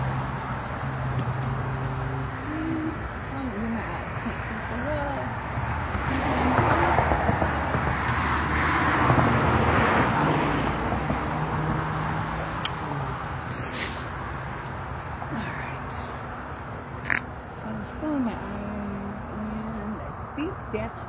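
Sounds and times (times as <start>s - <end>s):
car passing: 0.0s - 21.0s.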